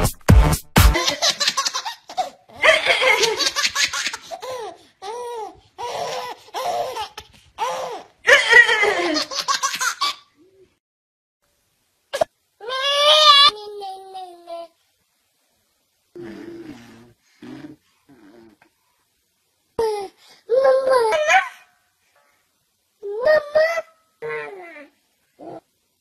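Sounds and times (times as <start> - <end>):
music with steady beat: 0.0 - 1.0.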